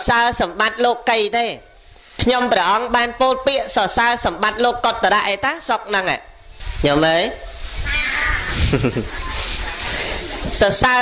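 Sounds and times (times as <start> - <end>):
noisy murmur: 7.6 - 11.0.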